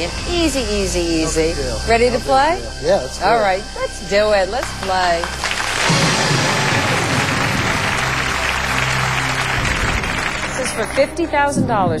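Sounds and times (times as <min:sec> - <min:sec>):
low music: 0:00.0 - 0:12.0
audience applauding: 0:04.6 - 0:11.6.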